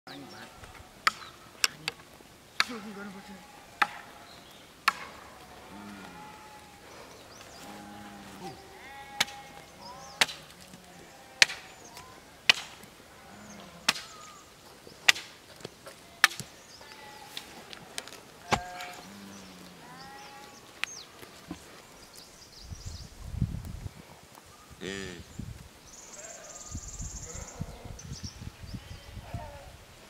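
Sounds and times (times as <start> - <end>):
sheep bleating: 2.7 - 4.4, 5.4 - 6.9, 7.6 - 12.3, 18.4 - 20.6
wooden stake knocks: 3.8 - 4.1, 4.9 - 5.2, 18.5 - 19.0.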